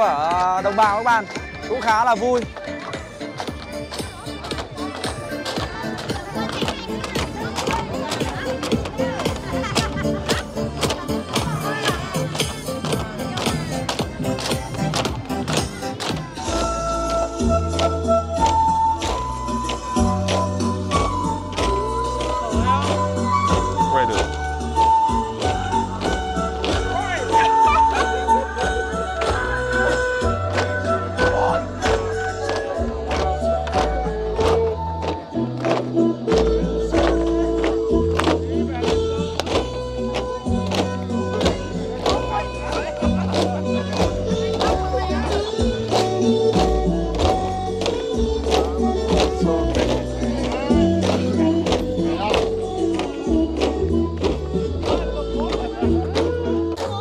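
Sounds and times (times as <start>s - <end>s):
melodic music: 0.0s - 57.0s
bamboo poles knocking together: 33.2s - 56.9s.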